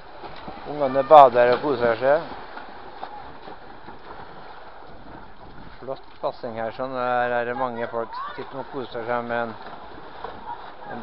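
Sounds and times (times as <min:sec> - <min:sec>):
children splashing in pool: 0:00.0 - 0:05.9, 0:07.2 - 0:11.0.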